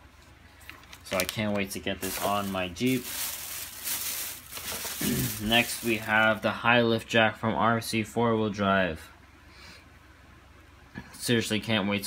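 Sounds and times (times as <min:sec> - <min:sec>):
plastic bag rustling: 0:00.6 - 0:06.4.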